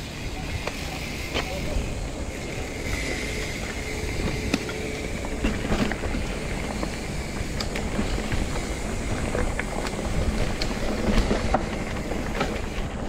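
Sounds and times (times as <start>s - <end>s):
bike clicks and rattles: 0.0s - 13.0s
bike tyres rumbling on dirt: 0.0s - 13.0s.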